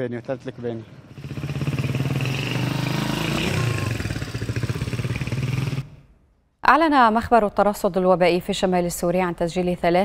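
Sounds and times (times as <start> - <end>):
motorcycle engine passing: 0.0 - 6.2.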